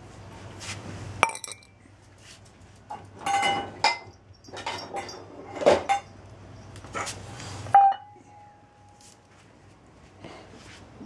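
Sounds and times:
metal bowl struck ringing: 7.8s - 8.6s.

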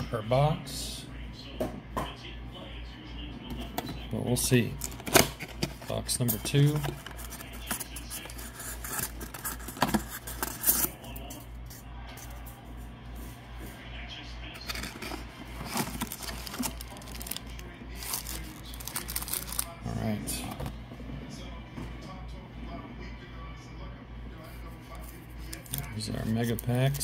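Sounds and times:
foil wrappers crinkling: 4.7s - 11.0s, 14.6s - 19.9s
cardboard and paper rustling: 4.7s - 11.4s, 14.6s - 19.8s.

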